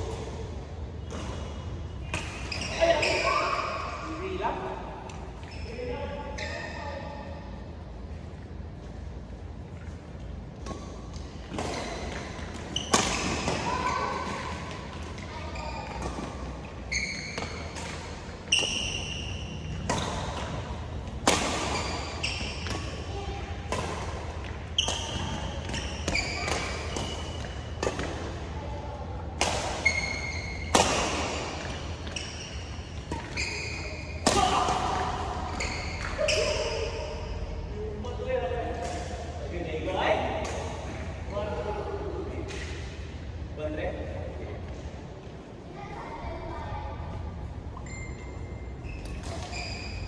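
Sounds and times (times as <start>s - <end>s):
shoes squeaking on court floor: 1.0s - 4.2s, 5.1s - 7.3s, 9.4s - 28.4s, 29.6s - 37.6s, 47.6s - 50.0s
rackets striking shuttlecock: 17.4s - 23.1s
racket striking shuttlecock: 19.8s - 23.0s, 29.3s - 32.2s.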